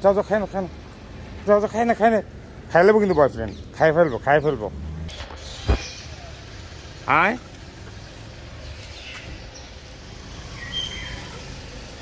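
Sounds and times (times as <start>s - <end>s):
street traffic hum: 0.0s - 12.0s.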